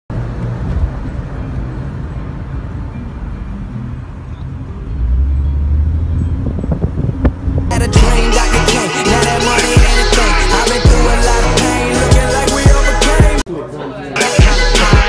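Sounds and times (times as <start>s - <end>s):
hip-hop music: 7.6s - 15.0s.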